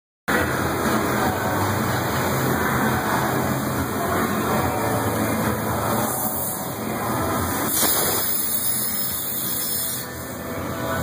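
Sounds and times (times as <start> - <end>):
machinery rush with low hum: 0.3 - 11.0.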